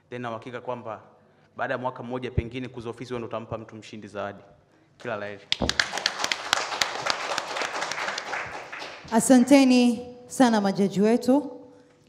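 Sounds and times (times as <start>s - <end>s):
crowd applauding: 5.5s - 9.5s.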